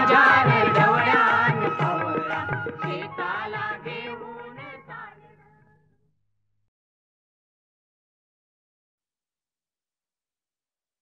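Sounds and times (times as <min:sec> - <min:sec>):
musical accompaniment: 0:00.0 - 0:04.3
person singing a devotional song: 0:00.0 - 0:05.7.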